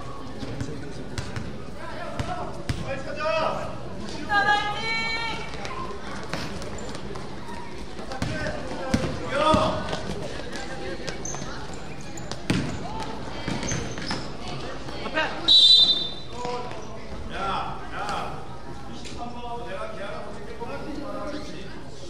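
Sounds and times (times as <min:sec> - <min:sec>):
basketball bouncing on court: 0:00.6 - 0:02.9, 0:08.0 - 0:11.5, 0:12.2 - 0:14.3
referee's whistle blast: 0:15.5 - 0:16.3.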